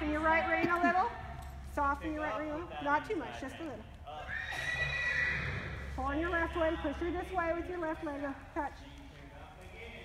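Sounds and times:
horse whinnying: 0:04.2 - 0:05.9.

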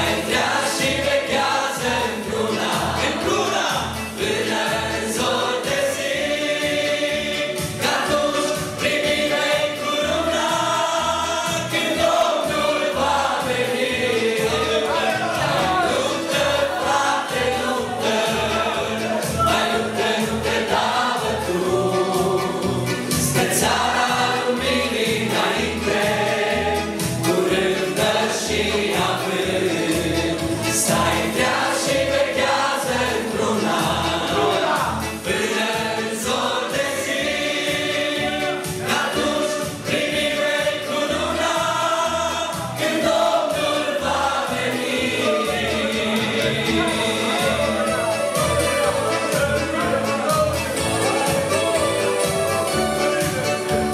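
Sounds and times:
man and woman singing: 0:00.0 - 0:53.7
group of voices singing: 0:00.0 - 0:53.9
instrumental backing with beat: 0:00.0 - 0:53.9.

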